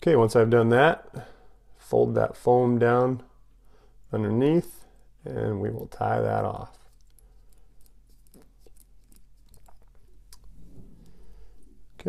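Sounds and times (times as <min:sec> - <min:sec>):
thread clicks and rustles: 0:06.8 - 0:10.6.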